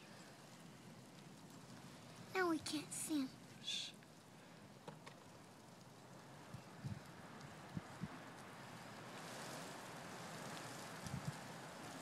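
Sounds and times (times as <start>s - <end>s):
faint outdoor hiss: 0.0s - 12.0s.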